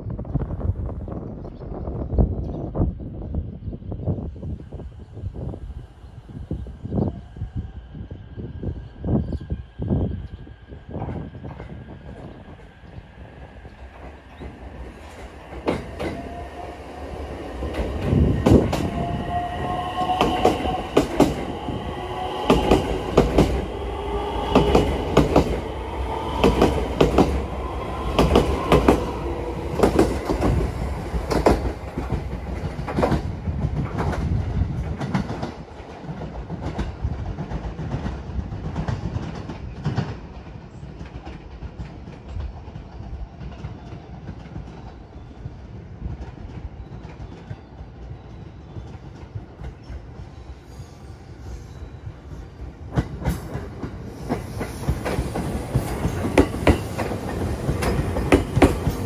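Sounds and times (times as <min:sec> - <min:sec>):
train whine: 0:02.2 - 0:59.0
wheels clacking over rail joints: 0:52.9 - 0:59.0.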